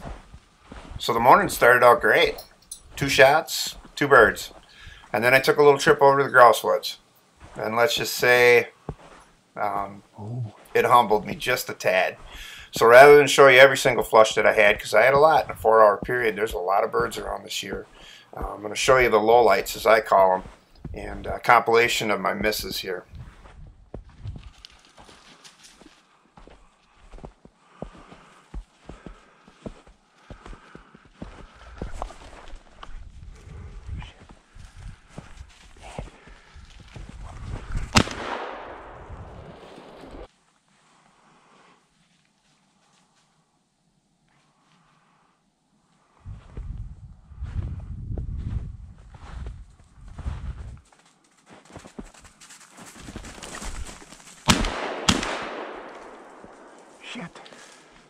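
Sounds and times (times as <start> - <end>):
footsteps crunching through snow: 0.0 - 2.5, 7.3 - 38.3, 39.4 - 43.4, 47.4 - 54.7, 55.8 - 58.0
shotgun shots: 37.9 - 40.3, 54.5 - 57.0.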